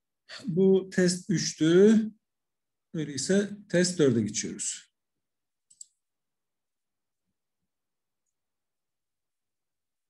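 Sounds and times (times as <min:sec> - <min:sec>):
computer mouse clicking: 0:05.6 - 0:06.0.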